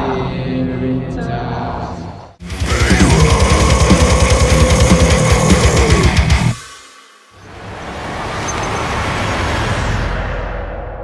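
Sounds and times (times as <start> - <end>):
distorted electric guitar: 2.4 - 6.6.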